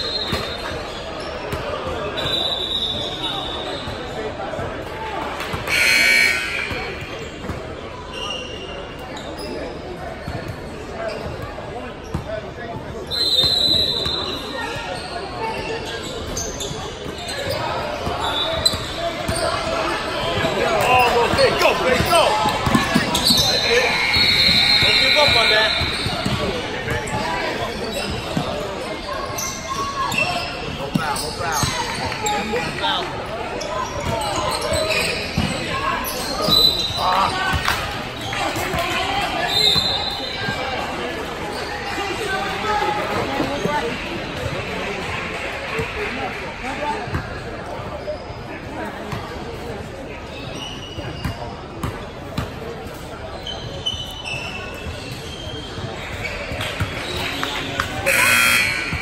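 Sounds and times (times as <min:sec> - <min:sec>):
voices of players and spectators: 0:00.0 - 0:59.0
basketball bouncing on court: 0:21.3 - 0:27.2.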